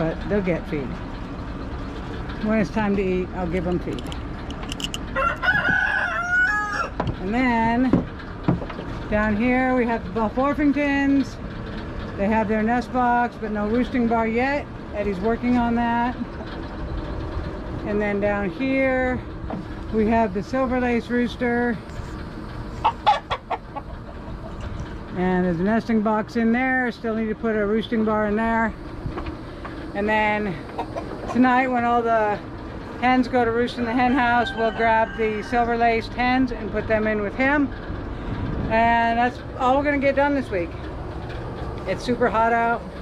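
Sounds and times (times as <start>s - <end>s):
rooster clucking: 4.5s - 7.2s, 21.9s - 25.0s, 30.5s - 31.7s, 33.8s - 35.9s
rooster crowing: 5.0s - 7.1s, 33.9s - 35.7s.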